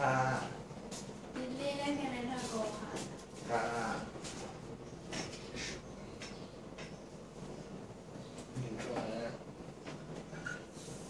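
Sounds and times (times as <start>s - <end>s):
young woman speaking: 1.4s - 3.2s.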